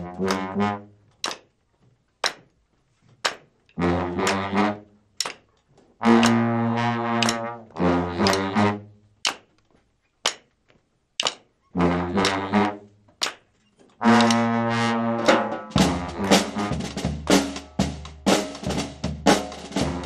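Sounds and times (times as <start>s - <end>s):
brass band chords: 0.0s - 1.1s, 3.8s - 5.1s, 6.0s - 9.2s, 11.8s - 13.0s, 14.0s - 20.0s
drum and cymbal hits: 15.2s - 20.0s.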